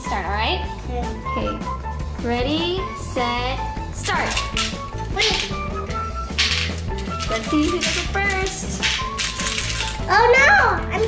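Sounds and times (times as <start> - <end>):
background music: 0.0 - 11.0
plastic game chips clattering: 4.0 - 10.1.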